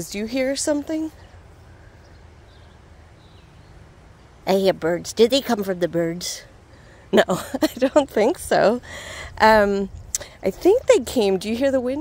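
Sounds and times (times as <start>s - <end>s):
faint birds chirping: 0.0s - 12.0s
low outdoor background: 0.0s - 12.0s.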